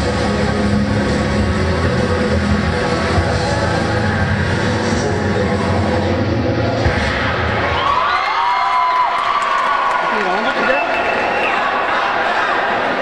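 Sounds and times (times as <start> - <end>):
cheer music with heavy bass beat: 0.0 - 9.8
crowd cheering and high shouts: 2.5 - 13.0.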